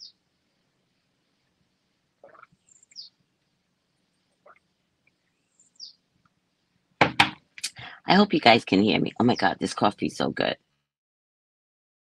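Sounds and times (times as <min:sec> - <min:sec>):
sip from a mug: 0:02.2 - 0:02.5
high bird chirps: 0:02.7 - 0:03.1, 0:05.5 - 0:06.0.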